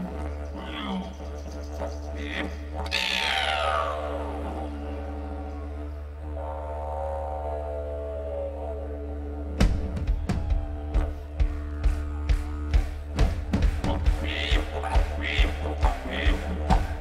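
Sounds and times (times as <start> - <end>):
didgeridoo drone: 0.0 - 17.0.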